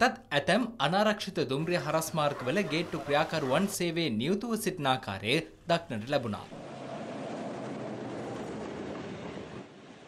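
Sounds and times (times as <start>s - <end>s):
train wheels rolling over rails: 6.6s - 10.0s.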